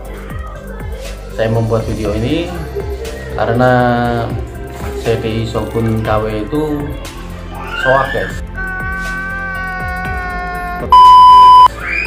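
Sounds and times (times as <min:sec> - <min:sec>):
loud high beep: 0:10.9 - 0:11.7.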